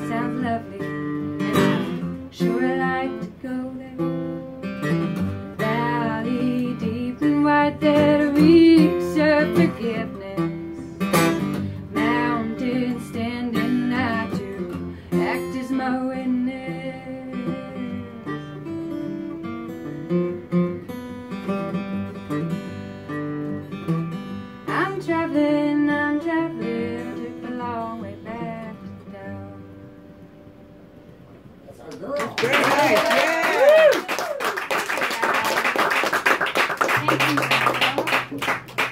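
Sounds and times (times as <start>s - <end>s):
acoustic guitar playing blues: 0.0s - 31.6s, 36.3s - 38.9s.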